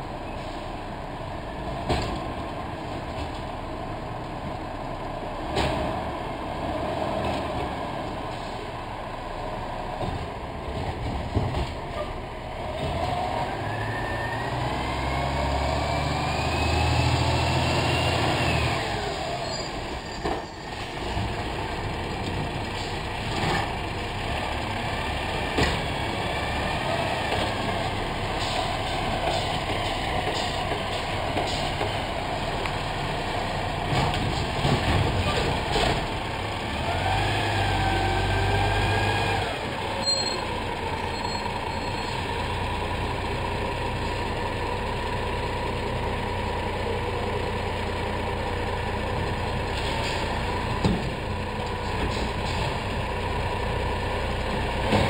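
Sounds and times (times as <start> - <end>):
garbage truck diesel engine: 0.0 - 55.0.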